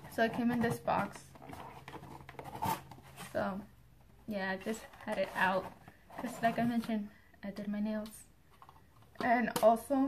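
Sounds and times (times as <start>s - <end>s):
cardboard box scraping and rustling: 0.1s - 3.4s, 4.7s - 6.8s.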